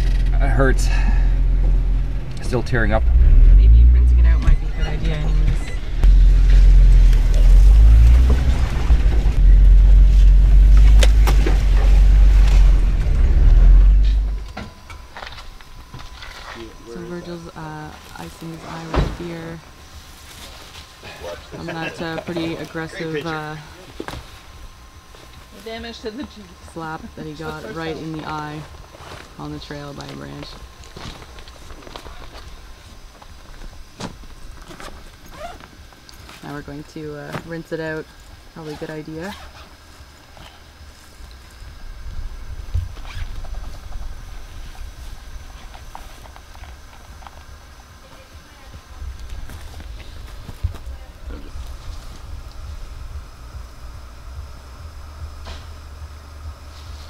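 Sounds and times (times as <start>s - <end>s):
vehicle engine rumbling: 0.0s - 57.0s.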